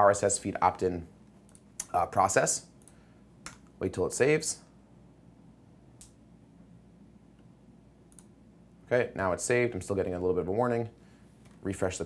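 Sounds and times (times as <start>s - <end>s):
man speaking: 0.0s - 1.2s, 1.8s - 2.8s, 3.8s - 4.7s, 8.8s - 11.0s, 11.6s - 12.0s
computer mouse click: 8.1s - 8.4s.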